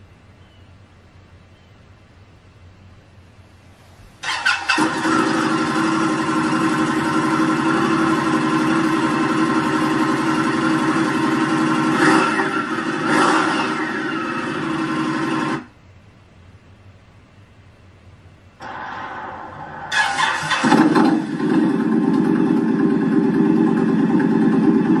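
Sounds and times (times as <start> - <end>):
motorcycle engine idling and revving: 4.2 - 15.7, 19.9 - 25.0.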